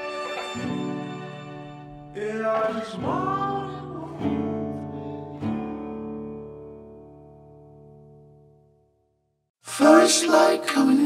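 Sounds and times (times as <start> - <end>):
acoustic guitar chords strummed: 0.0 - 8.9.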